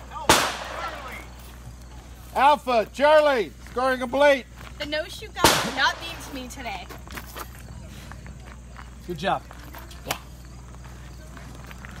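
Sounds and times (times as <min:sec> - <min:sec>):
faint voices: 0:00.0 - 0:12.0.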